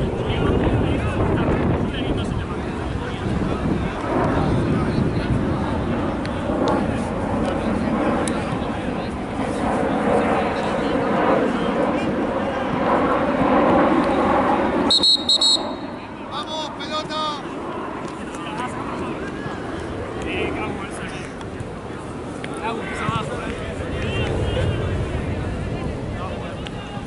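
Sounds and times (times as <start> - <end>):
wind rumble on microphone: 0.0 - 14.9, 17.7 - 27.0
players' voices: 0.0 - 27.0
referee's whistle blasts: 14.9 - 15.8.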